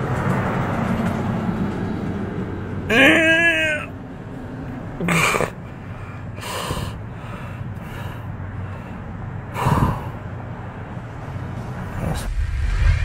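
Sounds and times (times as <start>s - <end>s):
man gasping and breathing hard: 5.1s - 10.3s
low steady rumble: 8.4s - 13.0s.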